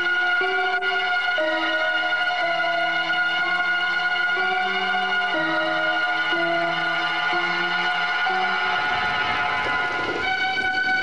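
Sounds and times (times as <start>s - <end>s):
stage musical held chords: 0.0s - 11.0s.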